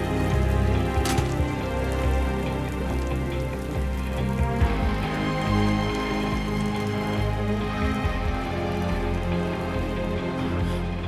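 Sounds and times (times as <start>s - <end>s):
film score held tones: 0.0s - 11.0s
heavy falling water patter: 0.0s - 11.0s.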